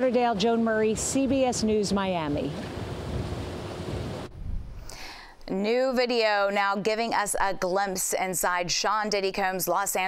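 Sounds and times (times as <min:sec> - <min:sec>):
wind buffeting microphone: 0:00.0 - 0:04.9.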